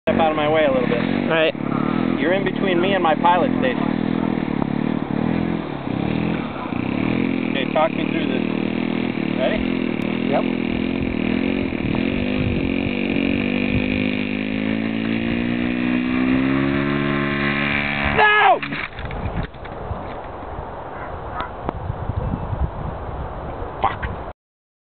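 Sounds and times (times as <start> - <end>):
model airplane engine running: 5.5 - 19.0
model airplane crash burst: 6.1 - 19.3.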